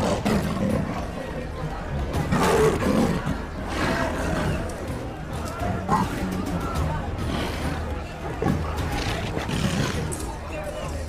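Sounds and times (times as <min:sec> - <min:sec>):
leopard snarling: 0:00.0 - 0:01.1, 0:02.3 - 0:04.6, 0:07.2 - 0:10.3.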